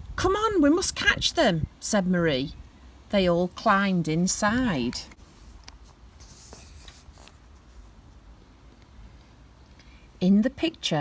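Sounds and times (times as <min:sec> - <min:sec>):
paper page turning: 0:05.6 - 0:07.5.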